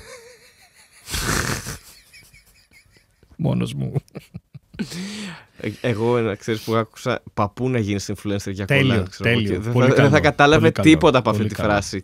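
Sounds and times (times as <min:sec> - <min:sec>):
person laughing breathily: 0:00.0 - 0:03.3, 0:04.3 - 0:05.4.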